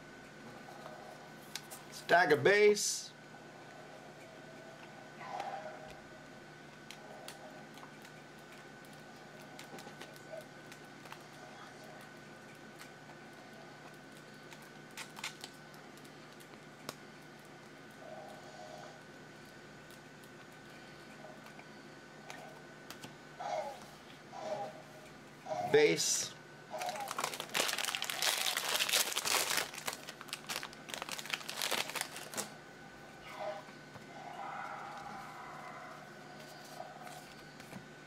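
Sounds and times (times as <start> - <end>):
faint hum with high tone: 0.0 - 38.0
trading cards clicking and flicking: 6.8 - 18.0, 22.2 - 23.2.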